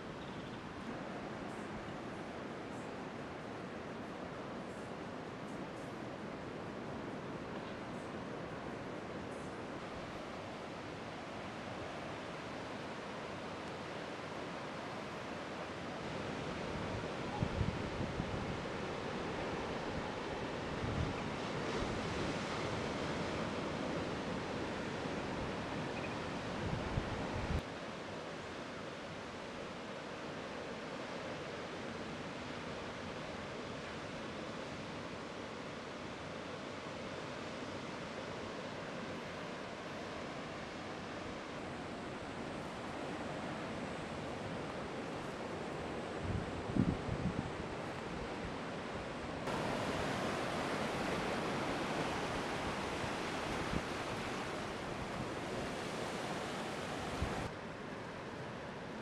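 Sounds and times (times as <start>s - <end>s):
ocean surf breaking: 49.4s - 57.5s.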